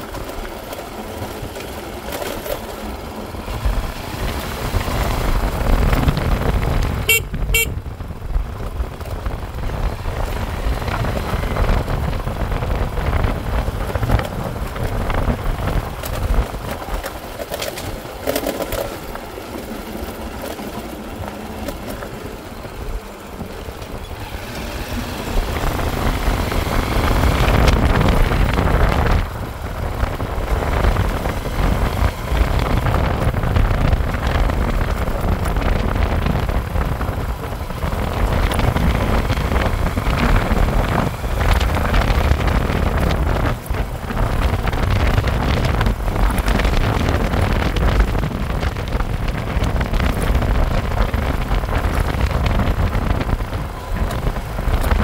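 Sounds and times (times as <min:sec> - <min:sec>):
motorcycle engine running: 0:00.0 - 0:55.0
wind and road rumble: 0:00.0 - 0:55.0
short horn beeps: 0:07.1 - 0:07.8.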